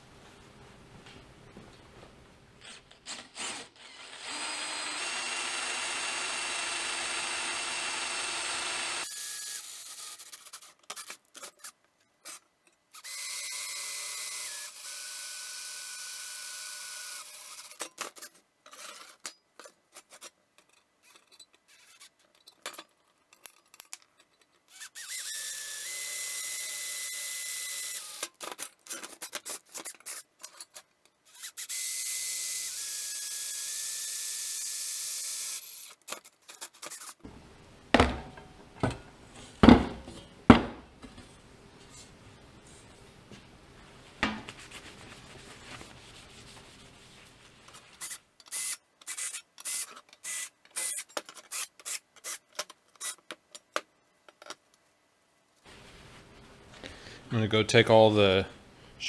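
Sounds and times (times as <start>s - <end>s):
cordless drill boring metal: 2.6s - 10.2s, 13.0s - 17.7s, 24.7s - 28.3s, 31.3s - 36.0s.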